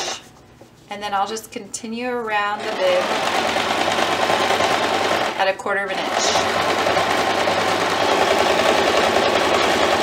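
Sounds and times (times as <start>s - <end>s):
electric sewing machine running: 2.6s - 10.0s.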